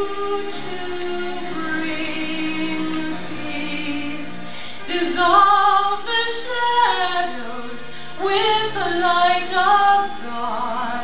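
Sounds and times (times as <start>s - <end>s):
woman singing over instruments: 0.0s - 11.0s.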